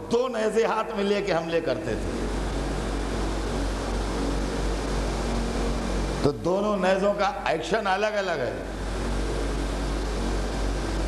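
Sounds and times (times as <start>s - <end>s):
hiss-like background noise: 0.0s - 11.0s
low hum: 0.0s - 11.0s.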